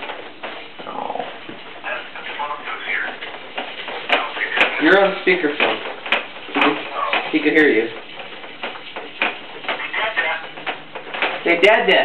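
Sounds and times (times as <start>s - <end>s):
plastic toys knocking: 2.7s - 12.0s.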